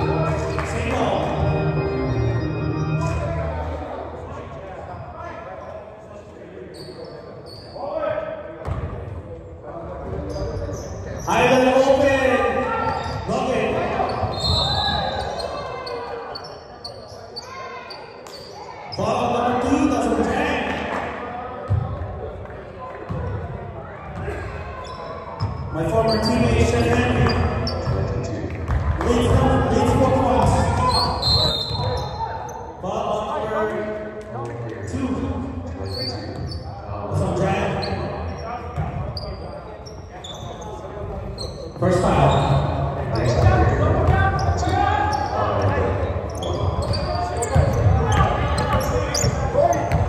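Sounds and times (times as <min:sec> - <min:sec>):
voices calling out echoing: 0:10.2 - 0:50.0.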